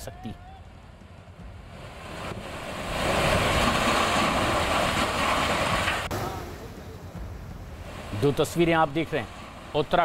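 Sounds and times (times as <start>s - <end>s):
rock and earth debris crashing: 3.0s - 6.1s.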